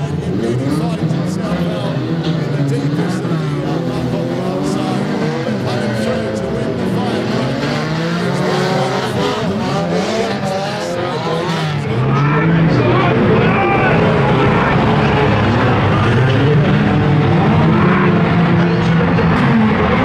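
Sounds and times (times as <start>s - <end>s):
racing car engines revving: 0.0s - 20.0s.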